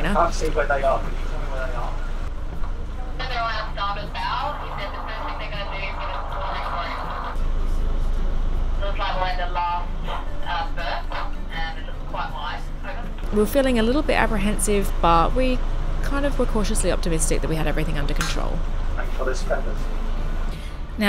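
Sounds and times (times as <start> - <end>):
boat engines droning: 0.0 - 21.0.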